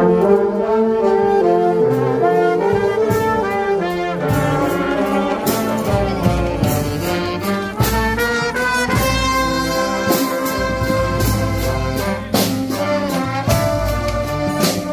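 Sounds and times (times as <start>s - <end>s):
marching band playing: 0.0s - 14.9s
heavy low drum beat: 2.6s - 14.9s.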